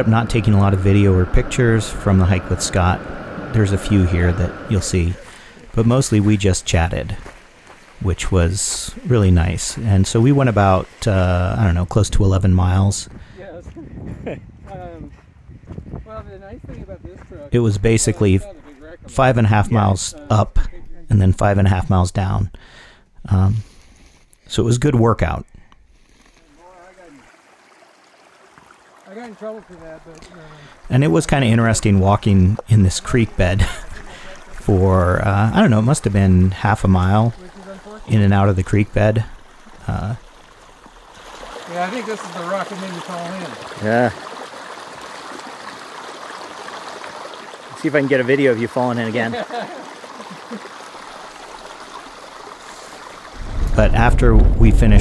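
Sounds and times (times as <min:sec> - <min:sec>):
person speaking: 0:00.0 - 0:07.2, 0:29.1 - 0:40.2, 0:53.7 - 0:55.0
creek trickling over rocks: 0:00.0 - 0:13.6, 0:25.8 - 0:54.6.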